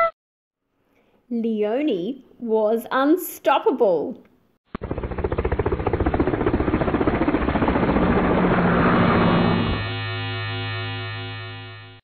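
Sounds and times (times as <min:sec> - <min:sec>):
low pulsing hum: 0:04.8 - 0:12.0.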